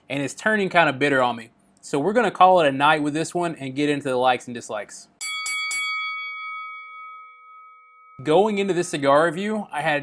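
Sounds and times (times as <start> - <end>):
boxing ring bell ringing: 5.2 - 8.9.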